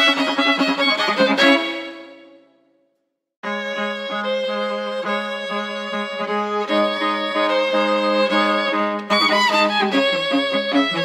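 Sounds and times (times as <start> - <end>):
violin notes: 0.0 - 2.6, 3.4 - 11.0.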